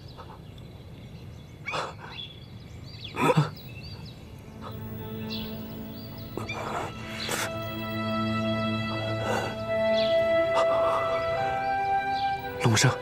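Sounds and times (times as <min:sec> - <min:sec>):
bird chirps: 0:00.0 - 0:13.0
soft background score music: 0:02.6 - 0:13.0.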